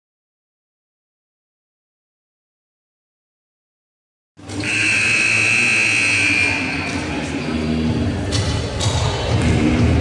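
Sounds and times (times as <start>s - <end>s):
gym crowd noise: 4.4s - 10.0s
scoreboard horn long high tone: 4.6s - 7.0s.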